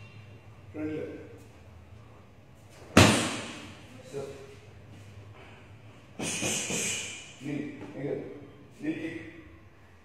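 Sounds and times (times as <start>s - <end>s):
karate kick crack: 3.0s - 3.7s.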